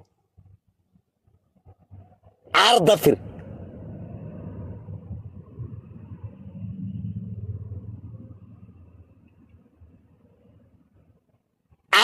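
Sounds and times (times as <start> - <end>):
low rumble over phone line: 0.3 - 11.9.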